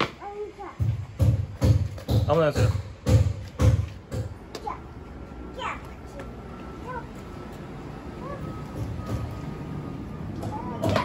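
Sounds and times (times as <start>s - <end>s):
child chattering: 8.2s - 8.6s.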